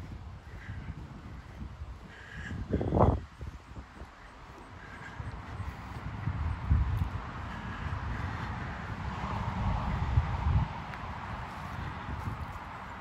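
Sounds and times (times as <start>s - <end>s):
crow cawing faintly: 0.0s - 10.5s
wind buffeting microphone: 0.0s - 13.0s.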